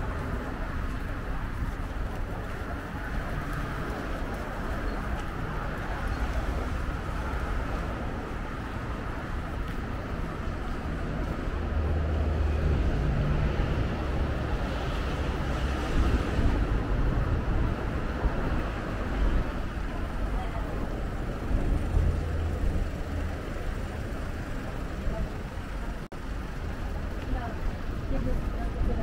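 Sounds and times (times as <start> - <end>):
pedestrians' voices: 0.0 - 29.0
traffic rumble: 0.0 - 29.0.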